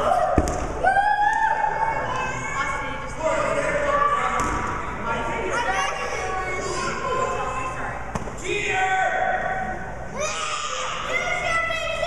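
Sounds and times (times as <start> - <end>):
ball bouncing on gym floor: 0.3 - 0.8, 4.4 - 4.8, 8.1 - 8.4.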